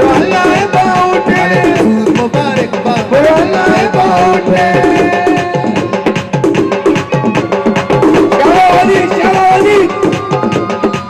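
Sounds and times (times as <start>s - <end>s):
fast hand-drum rhythm: 0.0s - 11.0s.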